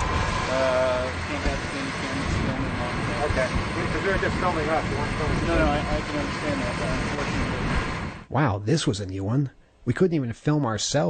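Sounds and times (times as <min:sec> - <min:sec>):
vehicle noise rumble and hiss: 0:00.0 - 0:08.3
people talking: 0:00.5 - 0:11.0.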